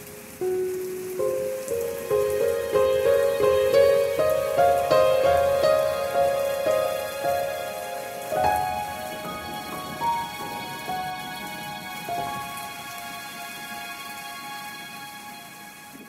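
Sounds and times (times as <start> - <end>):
calm instrumental music: 0.0 - 16.0
rain-like patter: 0.0 - 16.0.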